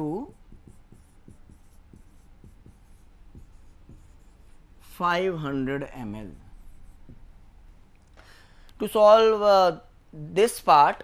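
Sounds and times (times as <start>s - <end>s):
marker pen writing on whiteboard: 0.0s - 7.9s
low room hum: 0.0s - 11.0s.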